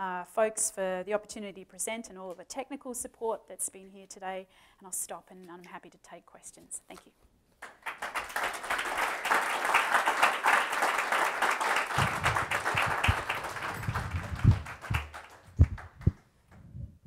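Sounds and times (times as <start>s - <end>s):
audience applauding: 7.6s - 16.2s
dull low thumps: 12.0s - 17.0s.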